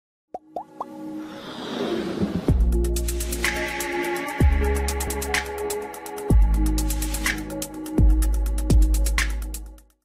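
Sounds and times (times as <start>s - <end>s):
whoosh: 1.2s - 2.9s.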